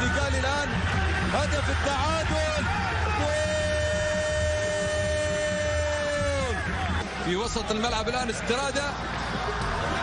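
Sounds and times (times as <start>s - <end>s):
stadium crowd rumble: 0.0s - 10.0s.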